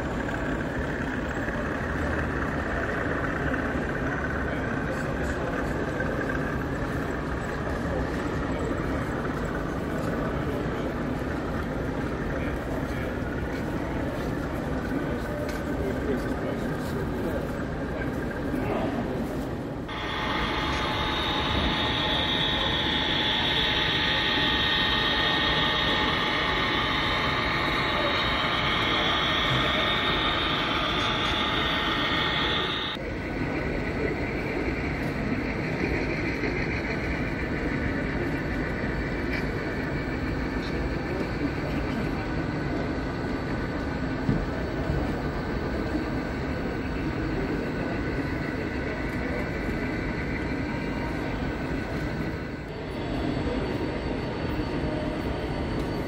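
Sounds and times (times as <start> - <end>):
hubbub of busy hall: 0.0 - 56.0
model trains running: 0.0 - 56.0.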